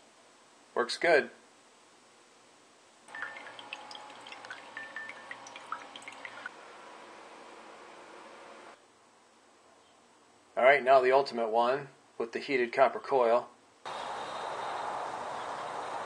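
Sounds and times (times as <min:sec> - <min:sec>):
water trickling into a glass: 0:03.1 - 0:06.5.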